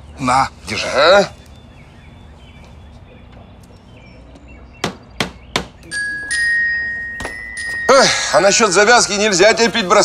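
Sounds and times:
bright chime-like musical note: 0:06.0 - 0:08.3.

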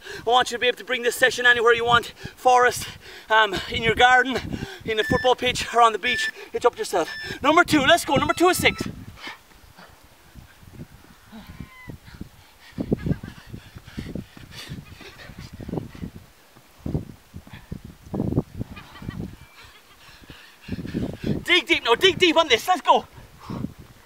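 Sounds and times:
man breathing heavily: 0:00.0 - 0:00.3, 0:02.1 - 0:05.0, 0:06.3 - 0:07.5, 0:08.9 - 0:16.7, 0:17.3 - 0:18.0, 0:18.6 - 0:22.0, 0:23.0 - 0:24.0.

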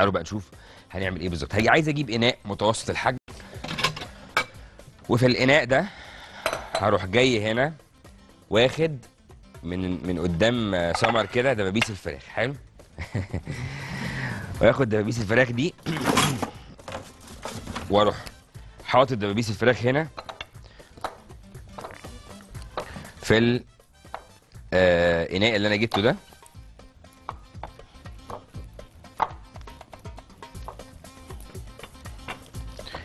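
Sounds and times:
quiet background music: 0:00.0 - 0:33.0
man speaking: 0:14.5 - 0:16.2, 0:23.1 - 0:23.6, 0:24.7 - 0:26.3.

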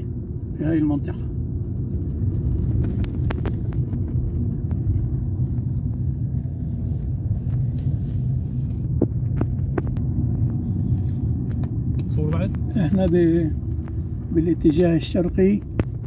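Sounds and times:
engine and road rumble: 0:00.0 - 0:16.0.

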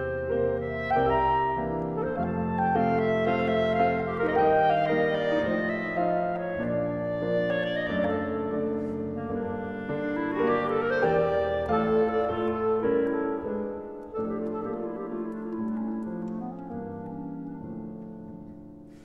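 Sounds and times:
clarinet melody: 0:00.0 - 0:19.0
piano accompaniment: 0:00.0 - 0:19.0.

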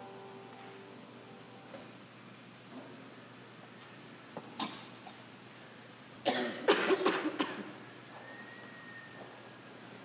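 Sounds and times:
person coughing: 0:06.3 - 0:07.7.

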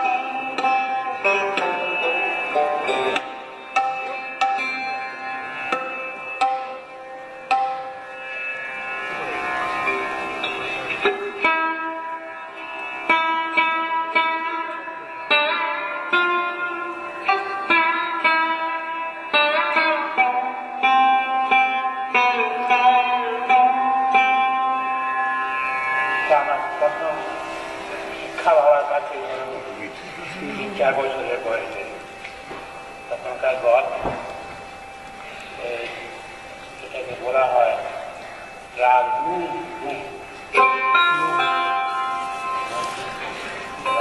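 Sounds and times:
sarod plucked notes: 0:00.0 - 0:44.0.

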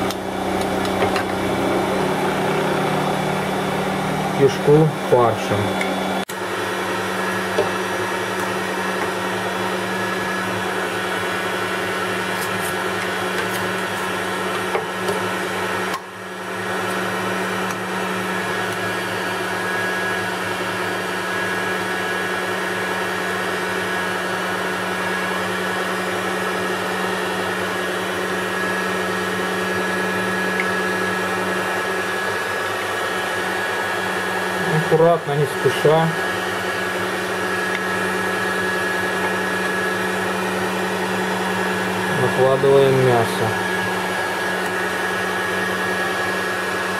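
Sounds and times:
electric meat grinder running: 0:00.0 - 0:46.9.

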